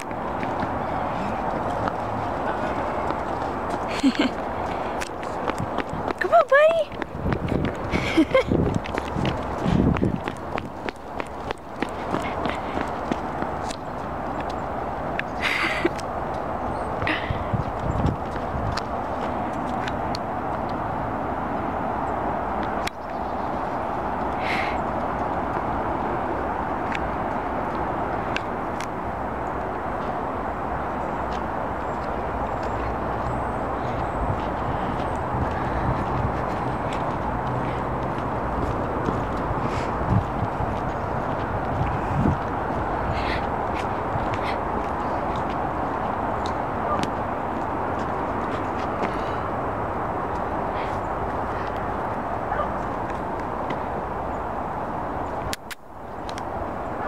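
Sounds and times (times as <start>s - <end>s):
outdoor background noise: 0.0s - 57.0s.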